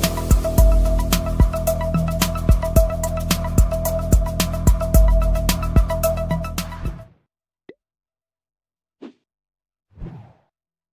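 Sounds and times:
background music: 0:00.0 - 0:07.1.

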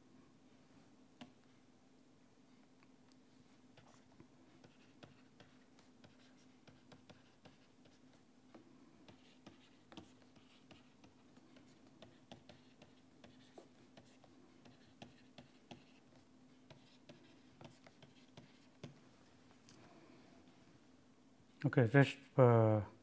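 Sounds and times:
stylus tapping and scratching: 0:03.8 - 0:19.0.

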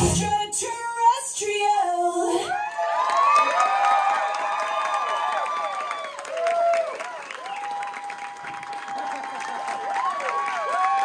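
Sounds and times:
dance music beat: 0:00.0 - 0:00.6
person singing: 0:00.0 - 0:02.5
audience whooping and cheering: 0:02.5 - 0:11.0.

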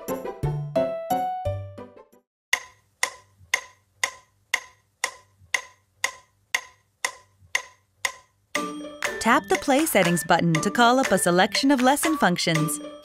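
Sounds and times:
music: 0:00.0 - 0:02.3, 0:08.6 - 0:13.0
electronic metronome clicks: 0:02.6 - 0:12.8.

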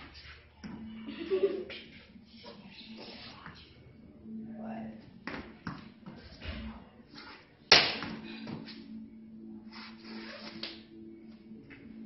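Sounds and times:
steady low hum: 0:00.0 - 0:10.2.

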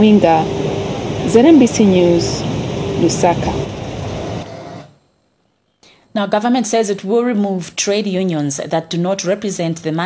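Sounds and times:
background hiss and rumble: 0:00.0 - 0:10.0.

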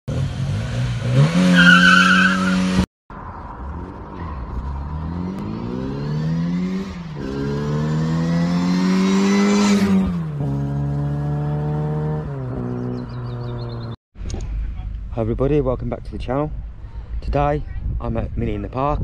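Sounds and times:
car engine revving: 0:00.1 - 0:13.9
car accelerating through gears: 0:03.6 - 0:13.9.

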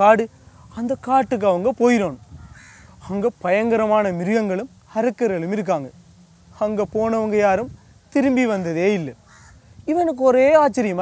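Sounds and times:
man telling a story: 0:00.0 - 0:02.2, 0:03.0 - 0:06.0, 0:06.6 - 0:09.2, 0:09.8 - 0:11.0
crow cawing: 0:02.3 - 0:03.1, 0:09.0 - 0:09.8.

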